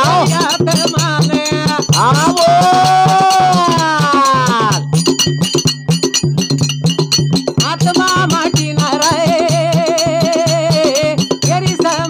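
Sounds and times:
hand drum beat: 0.0s - 12.0s
small hand cymbals: 0.0s - 12.0s
man singing long note: 2.0s - 4.7s.

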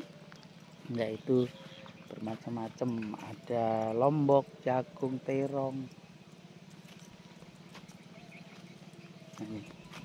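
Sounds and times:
small engine puttering: 0.0s - 10.0s.

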